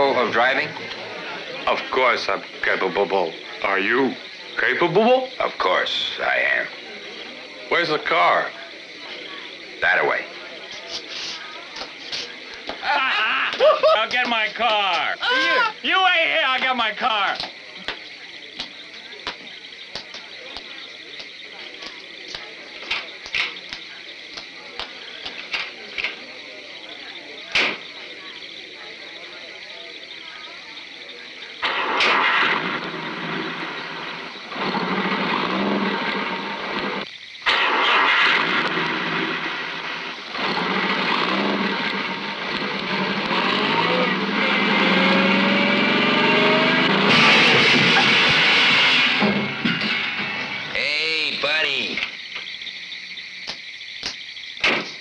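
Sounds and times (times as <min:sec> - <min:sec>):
car engine starting and running: 0:31.6 - 0:50.7
harsh high scraping: 0:46.8 - 0:50.9.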